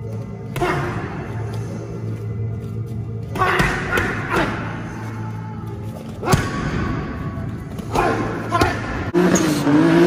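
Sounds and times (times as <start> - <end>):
background music: 0.0 - 10.0
punches and kicks thudding on pads: 6.2 - 9.1.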